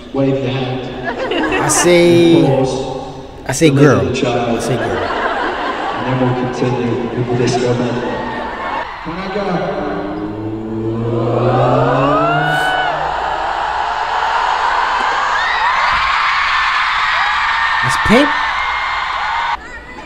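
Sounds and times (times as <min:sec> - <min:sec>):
crowd screaming and cheering: 0:04.6 - 0:20.0
man singing a long note: 0:09.5 - 0:13.1.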